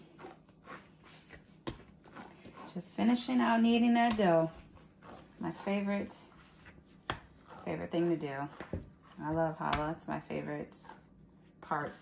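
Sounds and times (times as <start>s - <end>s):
hands kneading dough: 0.0s - 12.0s.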